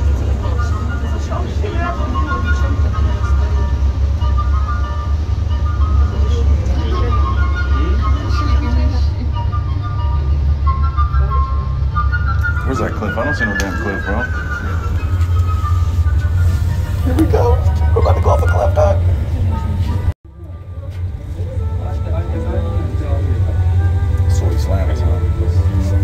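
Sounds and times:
low rumble of cable car: 0:00.0 - 0:26.0
passengers talking: 0:00.0 - 0:26.0.

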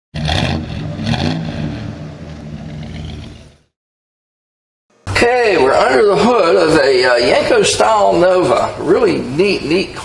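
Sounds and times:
car engine revving: 0:00.1 - 0:03.7.

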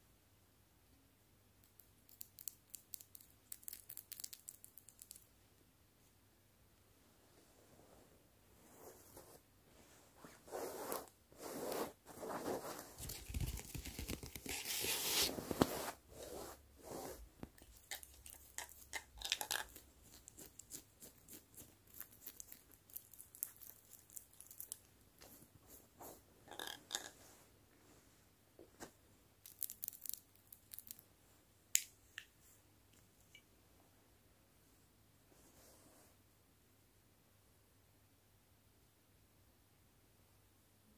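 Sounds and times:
scratching on plastic: 0:10.8 - 0:22.6.

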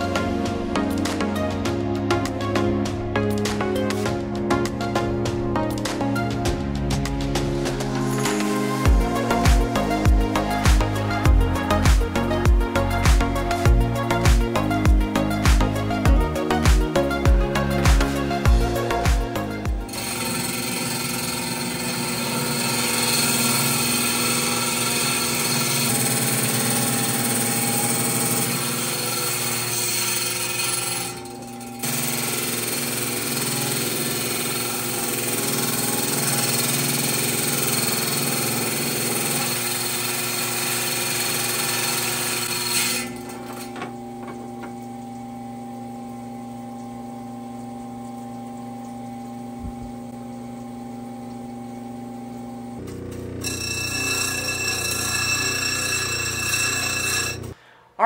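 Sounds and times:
saw motor hum: 0:00.0 - 0:57.6
saw blade grinding: 0:07.8 - 0:12.4, 0:16.5 - 0:44.8, 0:52.8 - 0:57.6.

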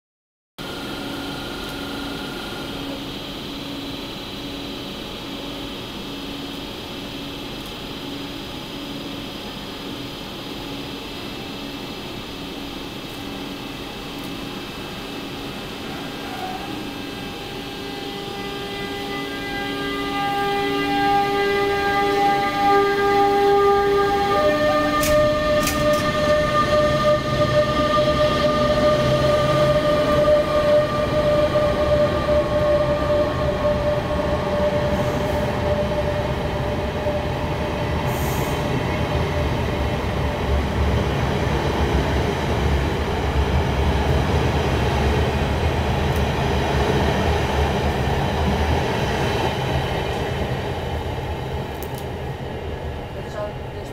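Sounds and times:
electric locomotive whining: 0:00.6 - 0:53.9
train coaches rumbling: 0:12.1 - 0:53.9.

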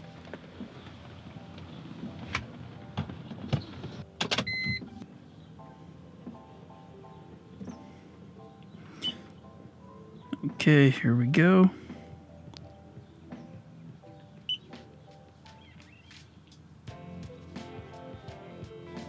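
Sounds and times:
quiet background music: 0:00.0 - 0:19.0.

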